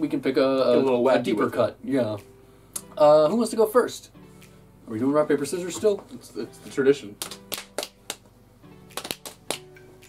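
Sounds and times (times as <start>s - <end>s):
faint background music: 0.0s - 10.0s
fists slapping into palms: 7.2s - 9.8s.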